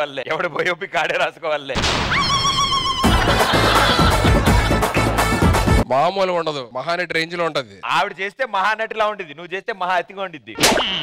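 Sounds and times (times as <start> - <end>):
music: 3.0 - 5.9.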